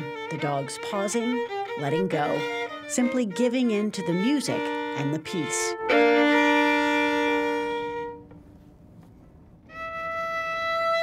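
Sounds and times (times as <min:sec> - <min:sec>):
solo violin playing: 0:00.0 - 0:08.6, 0:09.6 - 0:11.0.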